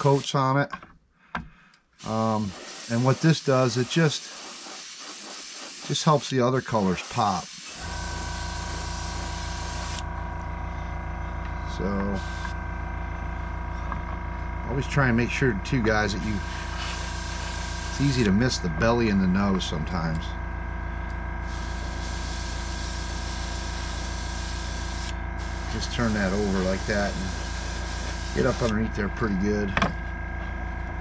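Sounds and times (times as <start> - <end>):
airbrush spraying hiss: 0.0 - 0.3, 2.0 - 10.0, 12.2 - 12.5, 16.2 - 18.3, 21.4 - 28.8
air compressor humming: 0.0 - 0.4, 2.0 - 31.0.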